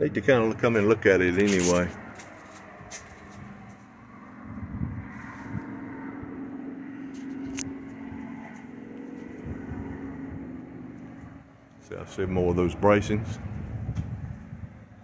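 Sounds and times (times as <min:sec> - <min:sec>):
low motor hum: 0:00.0 - 0:15.0.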